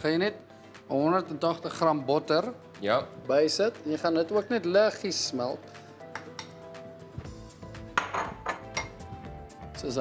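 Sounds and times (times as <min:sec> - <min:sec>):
light background music: 0:00.0 - 0:10.0
ceramic bowl clinking on steel: 0:08.0 - 0:09.0.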